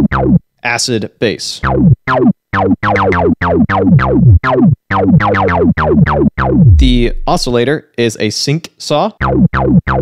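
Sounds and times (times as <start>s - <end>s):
distorted acid bass line: 1.7s - 7.6s.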